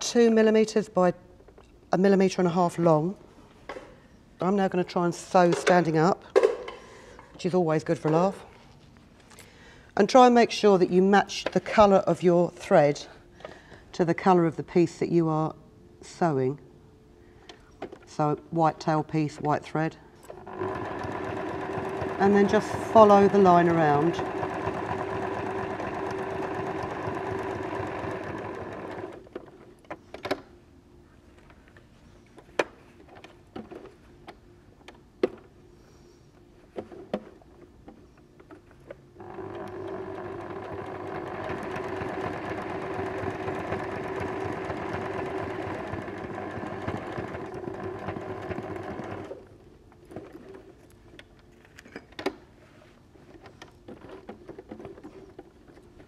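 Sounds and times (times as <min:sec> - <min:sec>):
sewing machine running: 0:20.4 - 0:29.3, 0:39.2 - 0:49.4.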